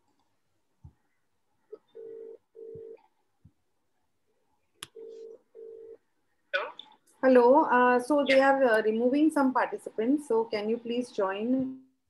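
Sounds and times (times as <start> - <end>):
telephone ringback tone: 1.9 - 3.0, 5.0 - 6.0.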